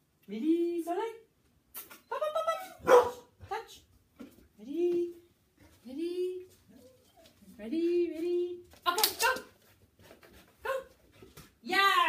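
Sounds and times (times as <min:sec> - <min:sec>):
dog yelping barks: 0:02.8 - 0:03.3.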